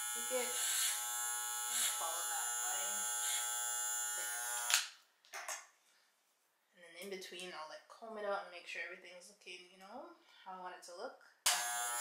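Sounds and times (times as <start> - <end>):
hair clippers buzzing: 0.0 - 5.0, 11.5 - 12.0.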